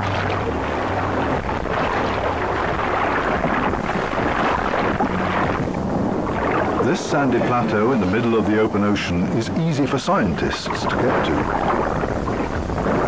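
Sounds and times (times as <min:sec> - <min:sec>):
low hum: 0:00.0 - 0:13.0
sea water sloshing and splashing: 0:00.0 - 0:13.0.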